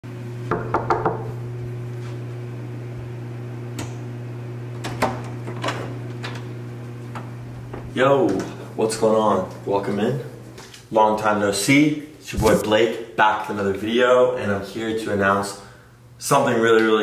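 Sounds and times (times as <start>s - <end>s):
low electrical hum: 1.2s - 17.0s.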